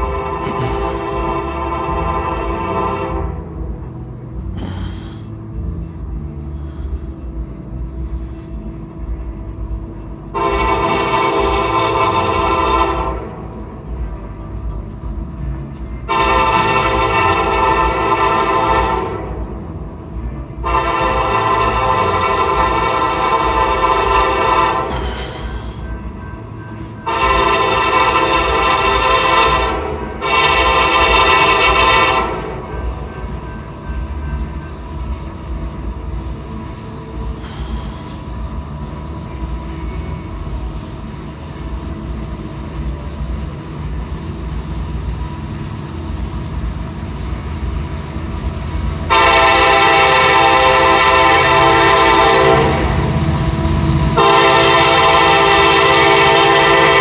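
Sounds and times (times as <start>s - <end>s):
locomotive air horn blasts: 0.0s - 3.7s, 10.3s - 13.8s, 16.0s - 19.9s, 20.5s - 42.4s, 49.0s - 57.0s
low rumble of train: 0.0s - 57.0s.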